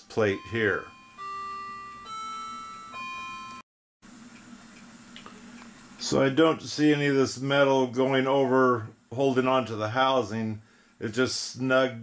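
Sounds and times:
bell-like chime notes: 0:00.2 - 0:03.6.

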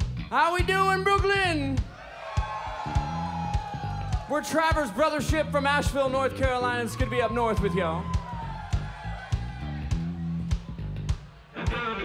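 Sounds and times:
crowd cheering and whooping: 0:01.9 - 0:12.0.

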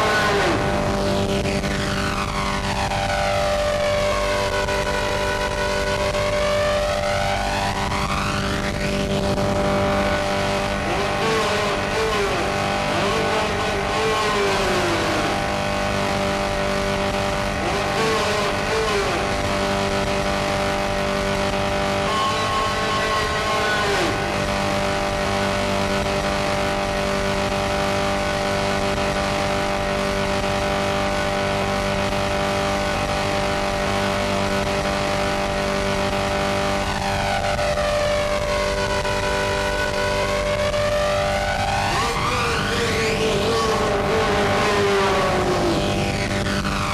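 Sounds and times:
harsh noise music: 0:00.0 - 0:46.9.

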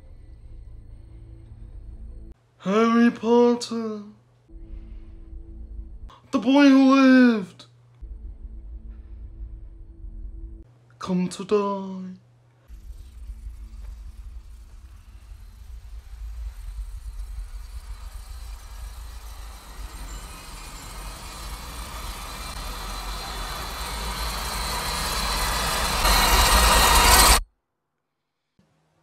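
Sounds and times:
deep rumble: 0:00.0 - 0:02.4, 0:04.5 - 0:06.1, 0:08.0 - 0:10.7, 0:12.7 - 0:27.4
rushing noise: 0:12.7 - 0:27.4.

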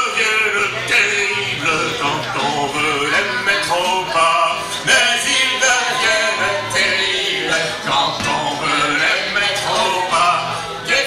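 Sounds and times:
acoustic guitar: 0:00.0 - 0:11.0
person singing: 0:00.0 - 0:11.0.

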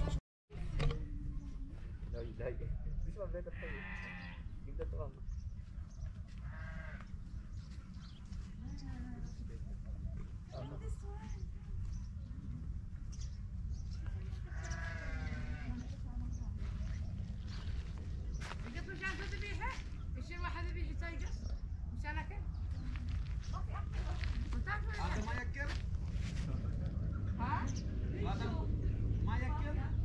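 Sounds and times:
farm animals bleating: 0:03.4 - 0:04.6, 0:06.3 - 0:07.2, 0:14.2 - 0:16.0
farm animals calling: 0:03.4 - 0:04.6, 0:05.7 - 0:09.5, 0:13.9 - 0:20.0
low rumble: 0:11.2 - 0:30.0.

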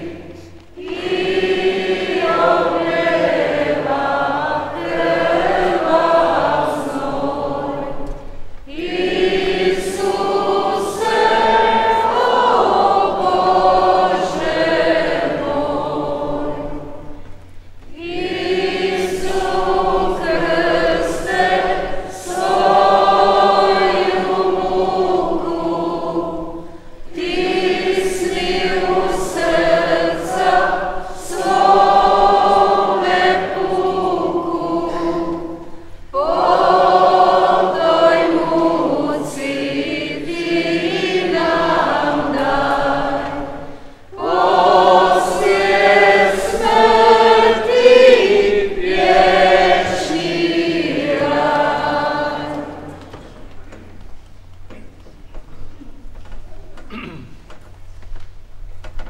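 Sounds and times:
choir singing a hymn: 0:00.0 - 0:53.6
choir breathing: 0:00.0 - 0:53.9.

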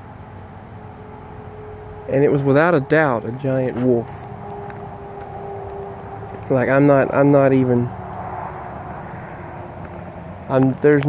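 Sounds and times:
motor humming at a distance: 0:00.0 - 0:10.5
outdoor background noise: 0:00.0 - 0:11.0.

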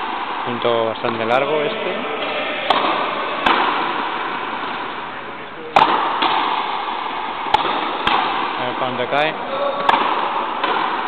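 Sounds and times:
rubber ball cracking off rackets: 0:02.2 - 0:05.0, 0:05.7 - 0:11.0.

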